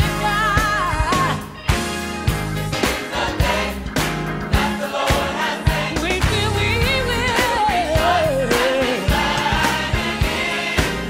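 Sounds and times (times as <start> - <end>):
bass: 0.0 - 11.0
choir singing gospel: 2.7 - 11.0
drum beat: 2.8 - 11.0.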